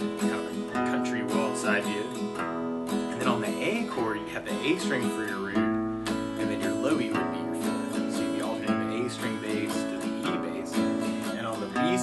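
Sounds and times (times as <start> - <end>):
acoustic guitar waltz strumming: 0.0 - 12.0.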